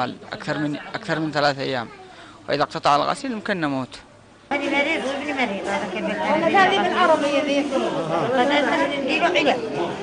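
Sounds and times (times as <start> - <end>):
overlapping chatter: 4.2 - 10.0.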